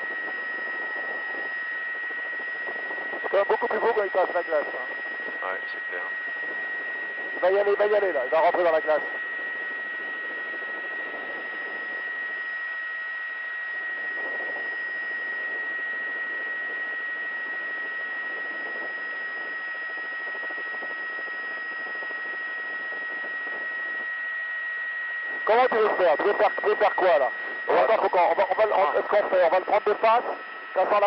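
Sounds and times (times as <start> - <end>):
constant high whine: 0.0 - 31.0.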